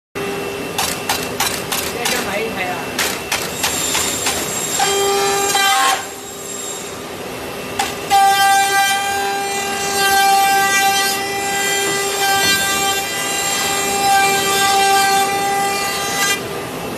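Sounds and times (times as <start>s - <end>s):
router spindle high whine: 1.9s - 16.9s.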